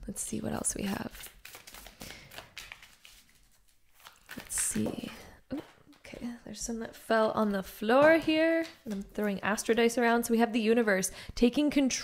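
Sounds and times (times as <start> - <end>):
card deck being shuffled: 1.1 - 5.2.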